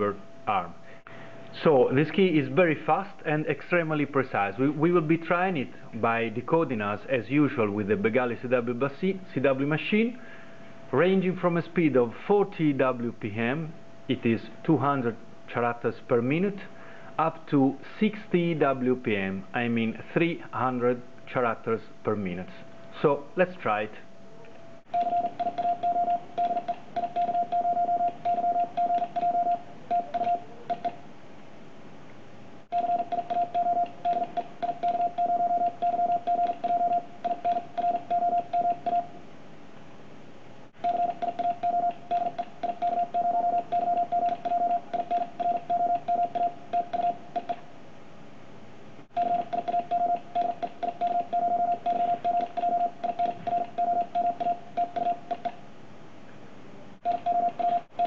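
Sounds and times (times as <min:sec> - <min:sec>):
morse code tone keyed rapidly: 0:24.9 - 0:31.0, 0:32.7 - 0:39.1, 0:40.8 - 0:47.6, 0:49.1 - 0:55.5, 0:57.0 - 0:58.0.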